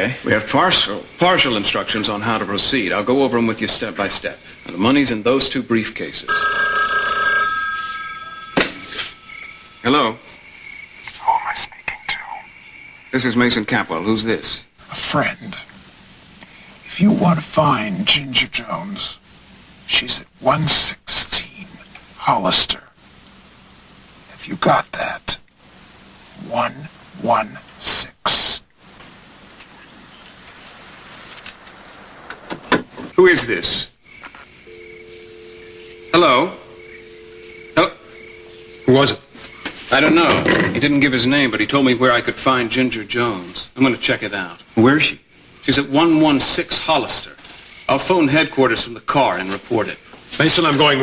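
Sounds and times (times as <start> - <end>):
telephone line click: 6.3 - 9.2
steady dial tone: 6.3 - 9.8, 34.6 - 40.0
telephone bell ringing: 6.3 - 9.8, 34.7 - 39.5.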